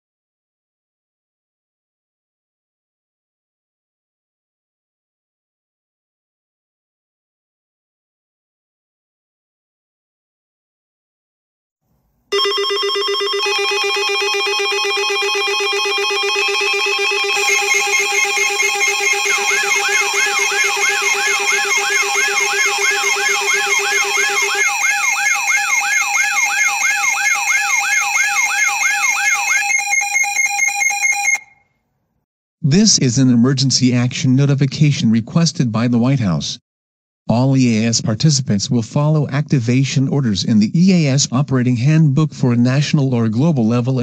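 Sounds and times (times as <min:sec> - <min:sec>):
buzzy low alarm tone: 0:12.3 - 0:31.6
higher steady alarm tones: 0:12.3 - 0:31.6
wavering siren sweep: 0:13.3 - 0:31.6.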